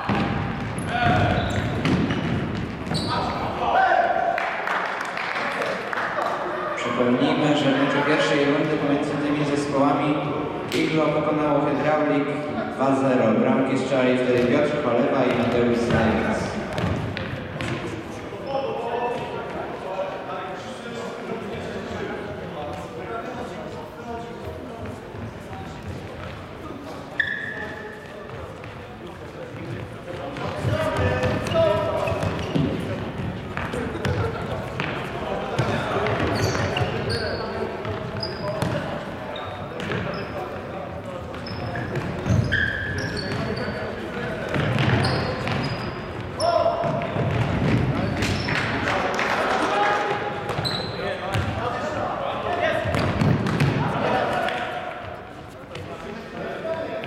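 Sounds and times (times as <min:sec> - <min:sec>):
shoes squeaking on floor: 0:00.0 - 0:03.5, 0:24.8 - 0:29.0, 0:29.6 - 0:48.7, 0:50.5 - 0:51.5.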